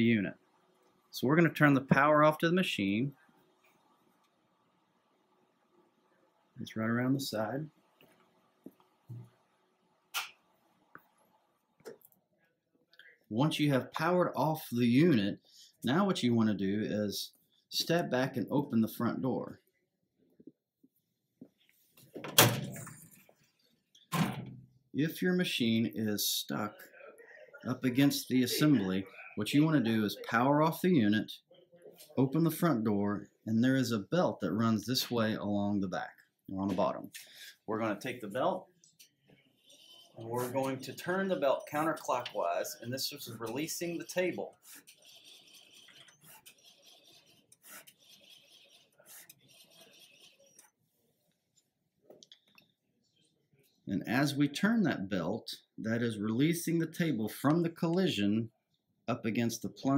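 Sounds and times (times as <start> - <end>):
door thud: 22.2 - 22.9, 24.1 - 24.7
belt rubbing and rasping: 44.6 - 50.7.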